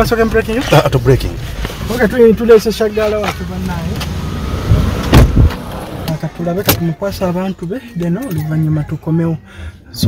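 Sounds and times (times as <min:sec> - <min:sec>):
car engine rumbling: 0:00.0 - 0:10.0
heavy thuds: 0:03.2 - 0:07.0.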